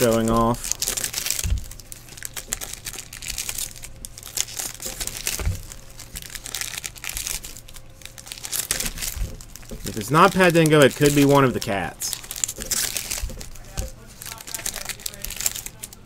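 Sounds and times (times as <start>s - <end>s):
card pack wrappers crinkling: 0.0s - 16.0s.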